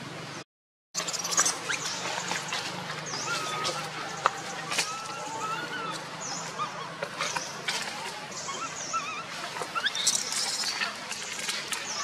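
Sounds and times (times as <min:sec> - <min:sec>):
macaque coos: 0:03.2 - 0:10.1.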